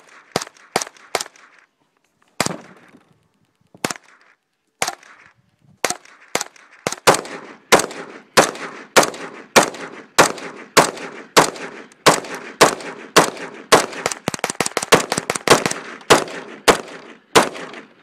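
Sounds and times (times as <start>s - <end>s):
gunshots with echo: 5.8s - 18.0s.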